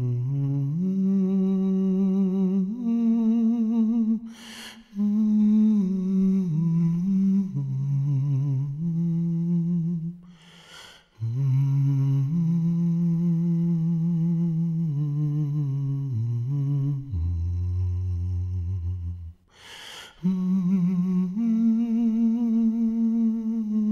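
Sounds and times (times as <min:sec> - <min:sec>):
man humming slow melody: 0:00.0 - 0:04.3, 0:04.9 - 0:10.3, 0:11.2 - 0:19.4, 0:20.2 - 0:23.9.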